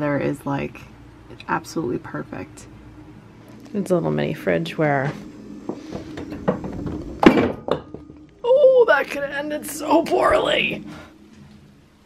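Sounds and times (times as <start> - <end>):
knocks and thumps: 5.1 - 8.2.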